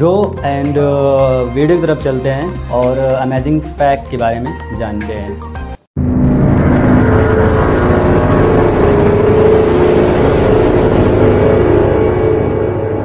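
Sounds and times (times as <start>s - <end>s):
low droning sound effect: 6.0s - 13.0s.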